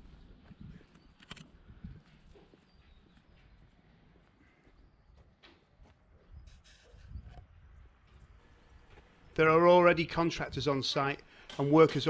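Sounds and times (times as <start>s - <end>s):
footsteps on paved road: 0.0s - 6.3s.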